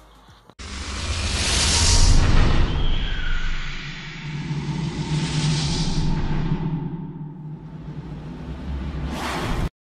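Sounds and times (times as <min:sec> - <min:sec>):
low rumble: 0:00.6 - 0:09.7
whoosh: 0:00.6 - 0:09.7.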